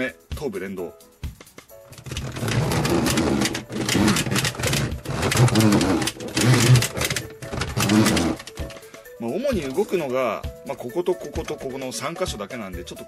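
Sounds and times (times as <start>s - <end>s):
toy robot gears clicking and rattling: 1.9s - 8.9s.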